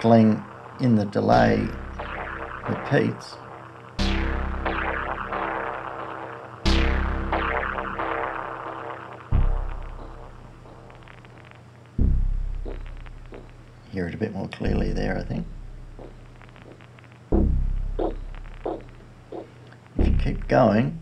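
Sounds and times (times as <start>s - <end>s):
synthesizer bass notes with delay: 0.0s - 11.3s, 12.0s - 13.8s, 14.7s - 21.0s
faint vinyl crackling: 0.0s - 21.0s.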